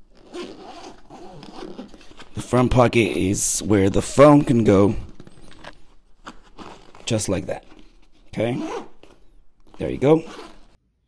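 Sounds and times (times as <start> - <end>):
fabric rustling and scraping: 0.0 - 2.8, 4.0 - 10.8.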